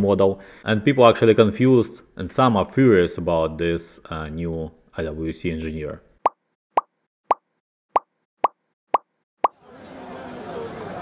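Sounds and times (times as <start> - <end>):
murmur of crowd chatter: 9.6 - 11.0.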